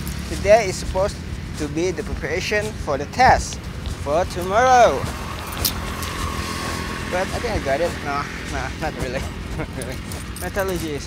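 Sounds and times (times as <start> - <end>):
road traffic rumbling: 0.0 - 11.0.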